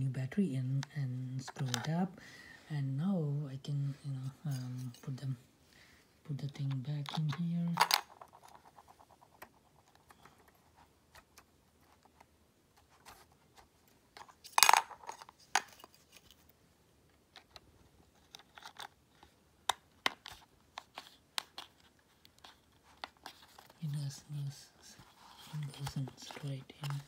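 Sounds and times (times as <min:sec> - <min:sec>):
light clicks and scrapes: 0:20.0 - 0:23.8, 0:24.8 - 0:27.0.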